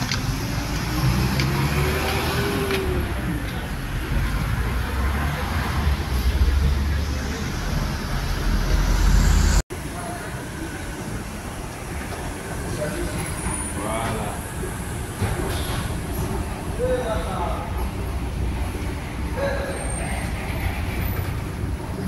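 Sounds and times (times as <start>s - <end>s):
car engines rumbling: 0.0s - 22.0s.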